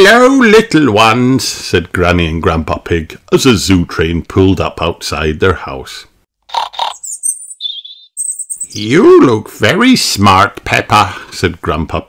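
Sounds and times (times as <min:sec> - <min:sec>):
birds chirping: 0:06.5 - 0:08.9.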